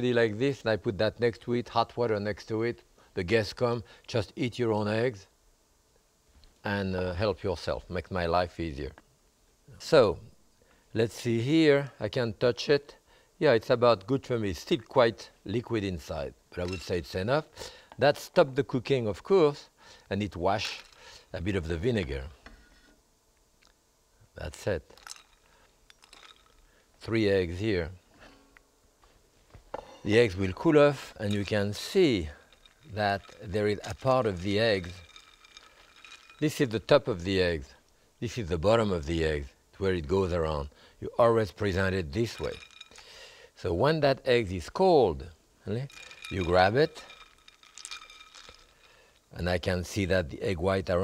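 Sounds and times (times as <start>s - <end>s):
ice cubes clinking in glass bowl: 20.5s - 21.2s, 24.5s - 26.8s, 30.1s - 37.4s, 41.4s - 43.3s, 45.7s - 49.2s.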